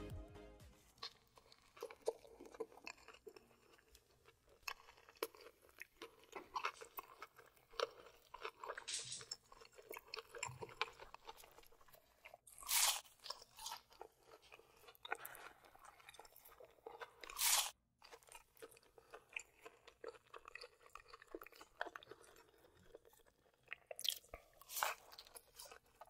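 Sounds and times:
crunchy bites: 1.0s - 26.0s
wet chewing clicks: 1.0s - 26.0s.

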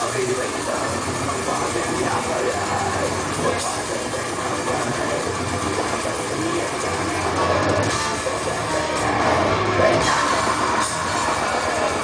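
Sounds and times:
bass guitar: 0.0s - 12.0s
distorted electric guitars: 0.0s - 12.0s
fast drums: 0.0s - 12.0s.

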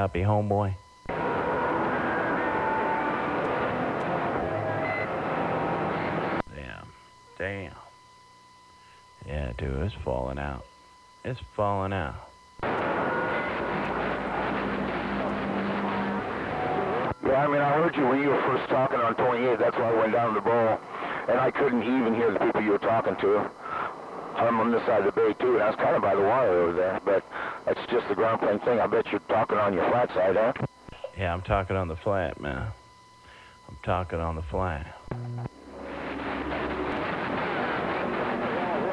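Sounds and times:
faint low hum tone: 0.0s - 38.9s
radio static hiss: 0.0s - 38.9s
faint garbled radio voice: 16.9s - 32.9s.

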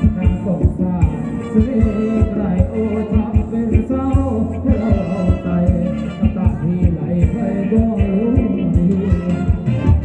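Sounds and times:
live band dance music: 0.0s - 10.0s
heavy kick drum: 1.8s - 10.0s.

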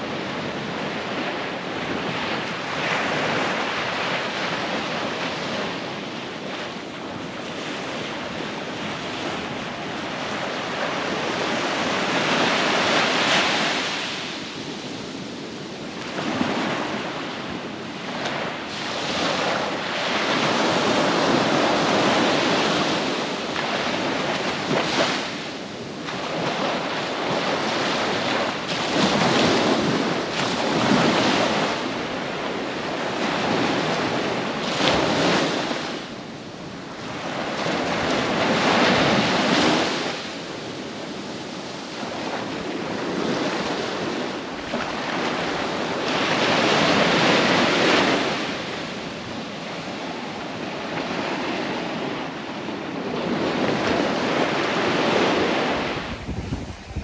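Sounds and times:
surf washing up a sandy beach: 0.0s - 57.0s.

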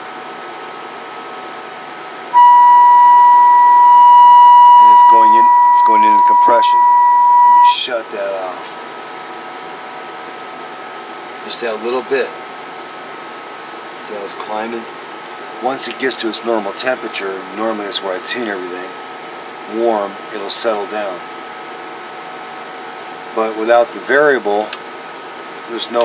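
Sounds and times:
cooling fan hiss: 0.0s - 26.0s
faint high whine: 2.3s - 8.6s.

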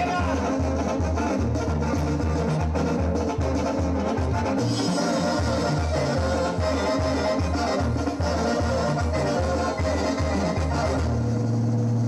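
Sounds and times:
brass band music through a pa: 0.0s - 12.0s
heavy pulsing bass line: 0.0s - 12.0s.

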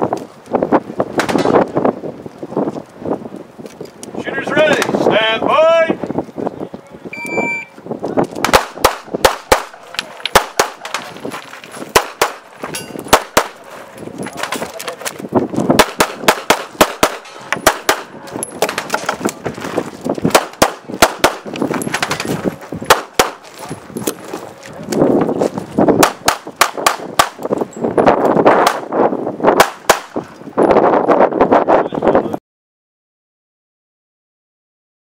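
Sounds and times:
shot timer beep: 7.2s - 7.7s
pistol shots in rapid strings: 15.8s - 18.1s.

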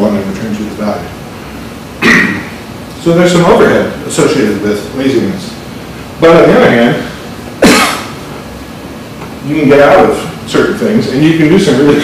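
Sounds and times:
short cough: 2.0s - 2.5s, 7.6s - 8.2s.

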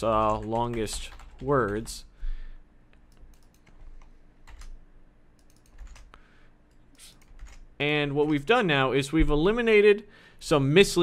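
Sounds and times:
computer keyboard typing: 0.0s - 2.0s, 3.1s - 4.8s, 5.4s - 6.1s, 6.9s - 8.5s
faint steady hum: 0.0s - 11.0s.

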